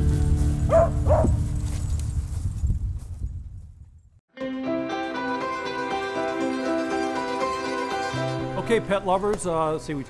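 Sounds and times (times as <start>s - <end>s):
background music: 0.0s - 1.4s, 4.3s - 10.0s
dog barking: 0.7s - 1.4s.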